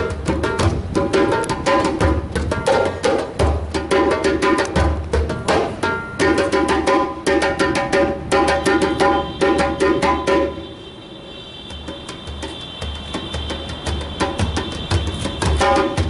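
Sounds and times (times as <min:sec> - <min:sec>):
djembes played by hand: 0:00.0 - 0:10.7, 0:11.7 - 0:16.0.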